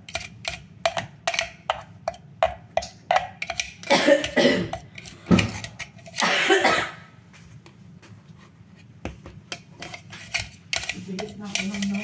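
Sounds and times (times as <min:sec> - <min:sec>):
person coughing: 0:03.8 - 0:04.8, 0:06.2 - 0:07.2.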